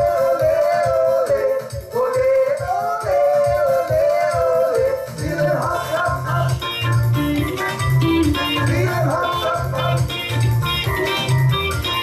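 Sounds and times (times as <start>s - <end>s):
electric guitar: 0.0s - 12.0s
keyboard: 0.0s - 12.0s
live band music: 0.0s - 12.0s
pulsing low bass line: 5.9s - 12.0s.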